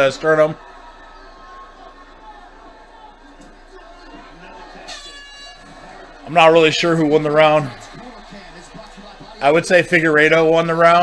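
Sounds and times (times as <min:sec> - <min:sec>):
crowd on tv: 0:00.0 - 0:11.0
faint tv commentary: 0:00.0 - 0:11.0.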